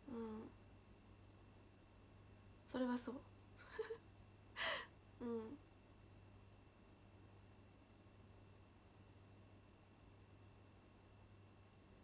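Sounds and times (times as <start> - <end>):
woman breathing: 4.6 - 5.0.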